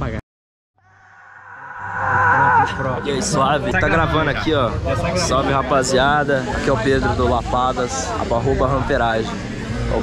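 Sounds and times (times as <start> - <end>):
voices: 1.7 - 8.4.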